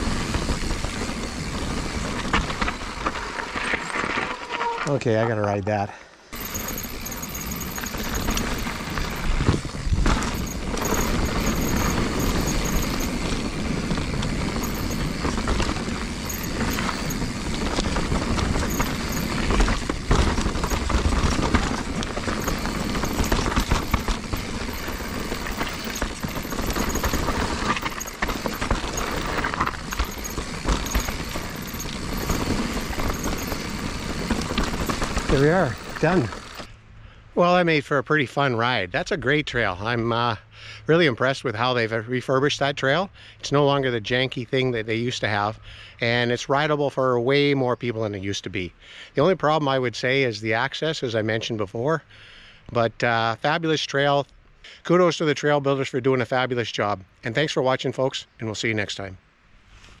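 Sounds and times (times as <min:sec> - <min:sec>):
bike tyres rushing on dirt: 0:00.0 - 0:05.1, 0:06.3 - 0:36.7
bike knocks and rattles: 0:06.4 - 0:36.7.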